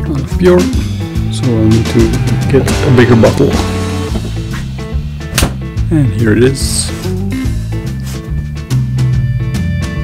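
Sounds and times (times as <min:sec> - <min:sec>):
background music with held notes: 0:00.0 - 0:10.0
sharp knock: 0:05.3 - 0:05.7.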